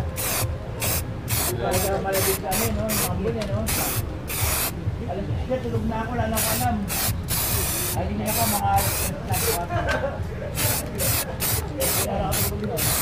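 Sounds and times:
spray paint can hissing bursts: 0.1s - 4.8s, 6.4s - 9.7s, 10.6s - 13.0s.

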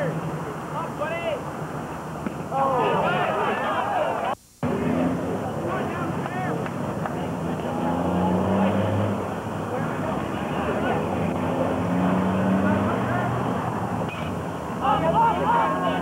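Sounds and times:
people shouting and calling: 2.5s - 6.6s, 12.7s - 16.0s.

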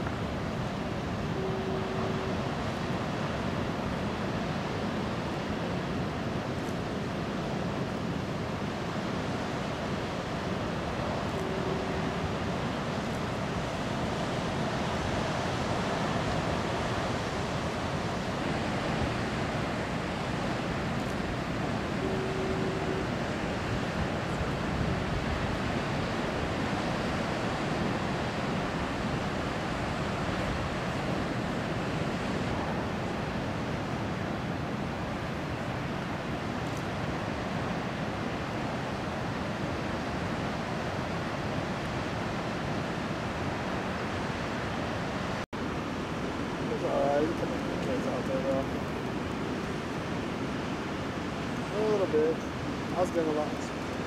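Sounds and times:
heavy ocean surf breaking: 0.0s - 54.0s
short steady tone: 1.2s - 2.6s, 11.1s - 12.6s, 21.7s - 23.7s.

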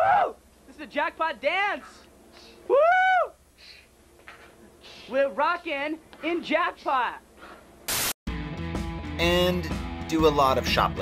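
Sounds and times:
young man whooping: 0.0s - 0.4s, 2.7s - 3.4s.

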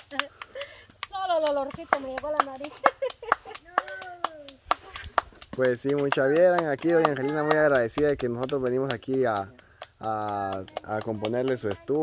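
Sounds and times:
hands patting dough: 0.0s - 12.0s.

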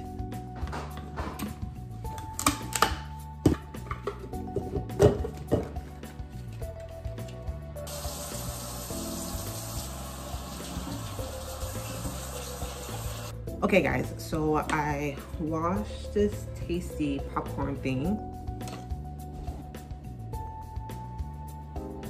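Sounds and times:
background music: 0.0s - 22.0s
knocks and clicks of handling: 0.6s - 5.8s
tap running water into sink: 7.9s - 13.3s.

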